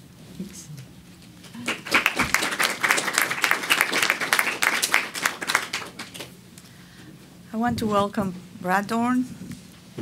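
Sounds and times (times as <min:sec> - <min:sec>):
audience applauding: 0:01.6 - 0:06.4.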